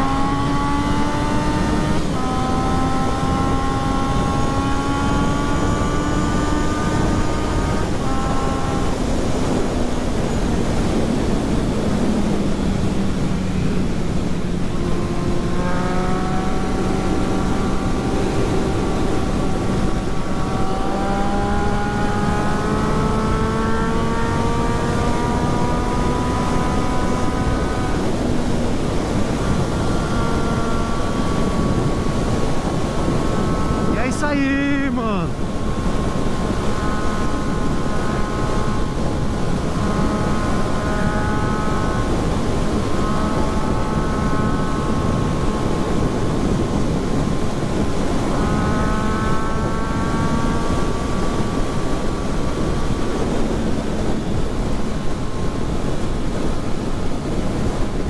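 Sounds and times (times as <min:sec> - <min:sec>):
motorcycle engine accelerating: 0:00.0 - 0:58.0
wind rush over microphone: 0:00.0 - 0:58.0.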